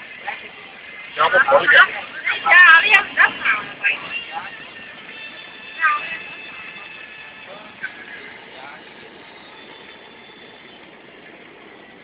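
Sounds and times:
road and engine noise inside van: 0.0s - 12.0s.

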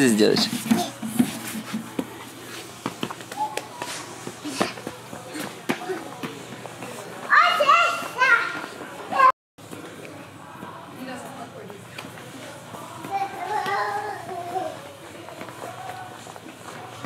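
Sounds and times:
hands and feet tapping floor: 0.4s - 9.8s.

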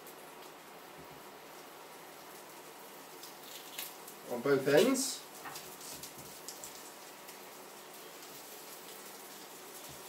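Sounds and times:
low steady hiss: 0.0s - 10.0s
small crackles: 0.0s - 10.0s
onion skin rustling: 3.2s - 4.0s.

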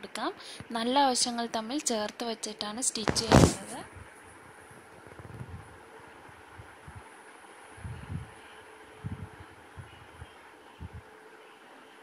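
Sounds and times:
faint steady hum: 0.0s - 12.0s
fabric rustling: 3.0s - 3.8s.

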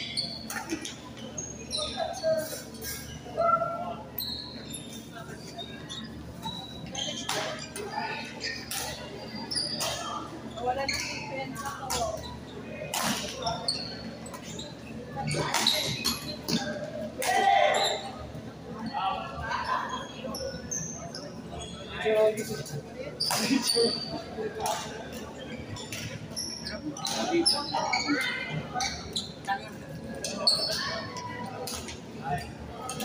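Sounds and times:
shoes squeaking on court: 0.0s - 3.2s, 4.2s - 17.0s, 20.3s - 33.0s
voices: 0.0s - 33.0s.

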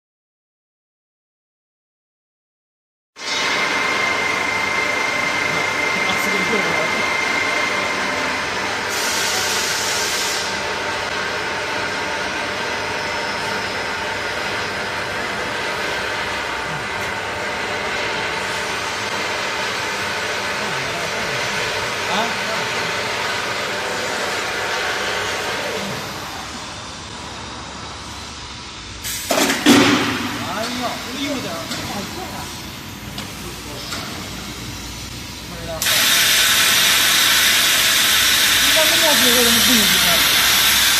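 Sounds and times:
machine whining tones: 3.2s - 28.1s
machine mechanical hum: 3.2s - 40.9s.

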